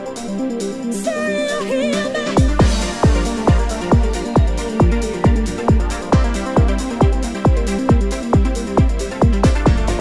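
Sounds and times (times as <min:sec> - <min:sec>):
held vocal with vibrato: 0:01.0 - 0:02.6
heavy kick drum beat: 0:02.4 - 0:10.0.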